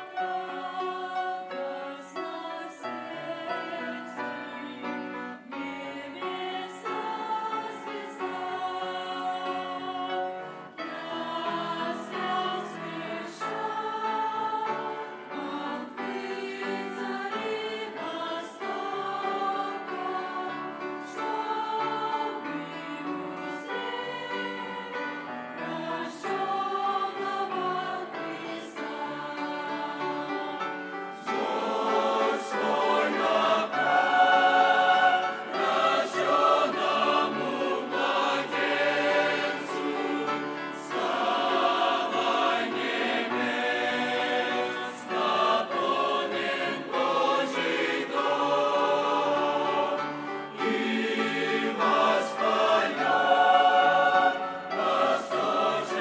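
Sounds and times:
mixed choir singing a hymn: 0.0s - 56.0s.

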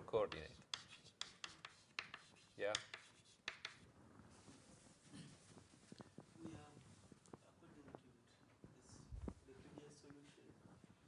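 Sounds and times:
taps of writing on a board: 0.2s - 3.8s.

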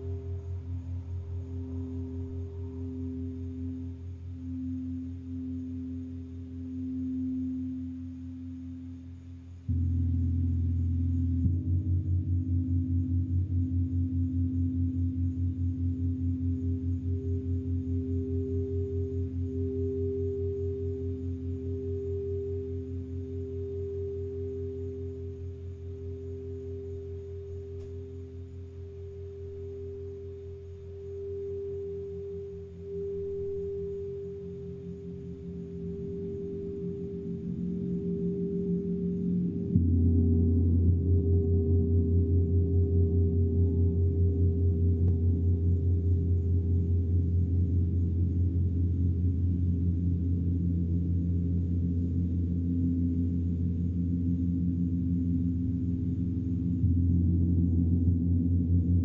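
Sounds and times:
crystal singing bowls ringing: 0.0s - 59.0s.

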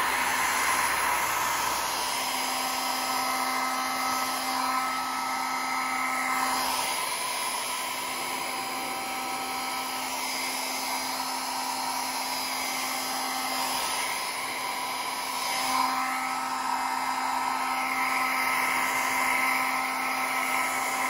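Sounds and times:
hair dryer running: 0.0s - 21.0s.

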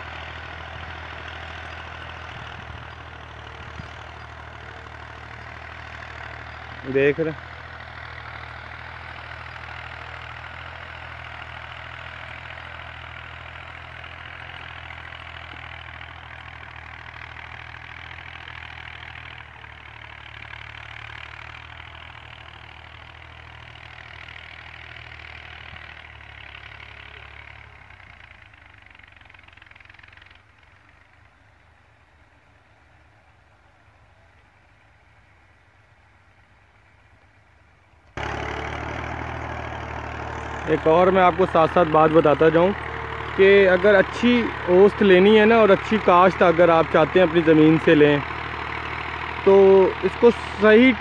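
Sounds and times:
diesel tractor engine running: 0.0s - 51.0s.

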